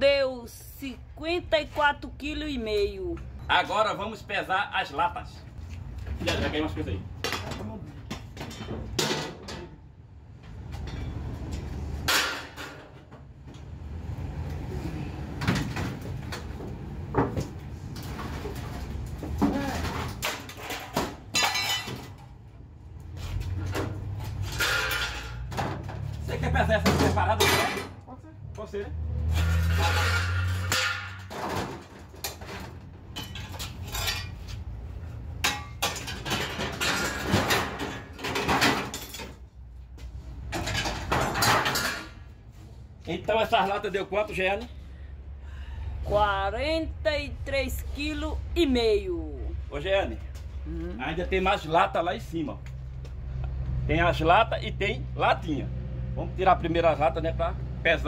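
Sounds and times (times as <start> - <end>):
steel cans clattering on metal: 18.0 - 22.2, 24.3 - 25.9, 29.3 - 32.6, 35.4 - 39.3, 40.5 - 42.2.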